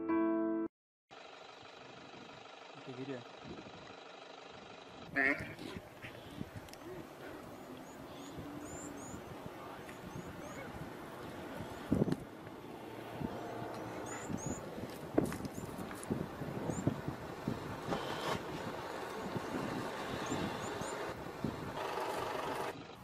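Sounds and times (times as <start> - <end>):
low steady rumble: 1.2 - 21.8
small birds chirping: 5.0 - 21.8
wind on microphone: 5.4 - 12.4, 13.0 - 22.9.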